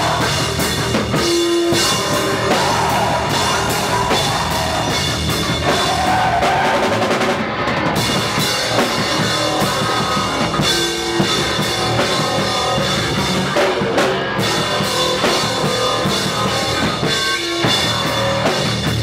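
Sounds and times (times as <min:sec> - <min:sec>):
drum kit: 0:00.0 - 0:19.0
electric bass guitar: 0:00.0 - 0:19.0.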